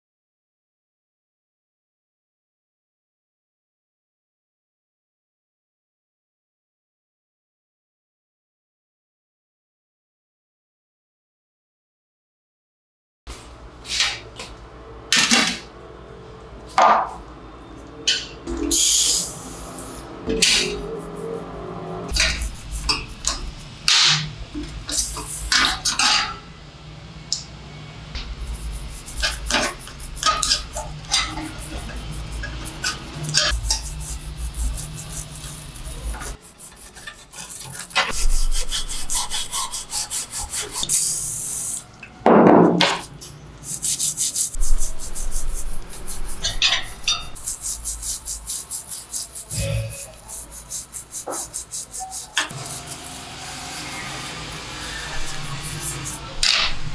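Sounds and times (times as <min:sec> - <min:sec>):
spray hiss: 0:18.7 - 0:21.4, 0:24.9 - 0:25.8, 0:28.5 - 0:41.8, 0:43.7 - 0:56.2
toothbrush scrubbing metal gears: 0:18.7 - 0:26.0, 0:28.2 - 0:41.8, 0:43.6 - 0:56.3.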